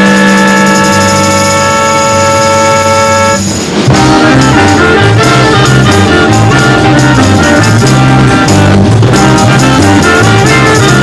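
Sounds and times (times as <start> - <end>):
jazz-rock band with saxophones: 0.0 - 11.0.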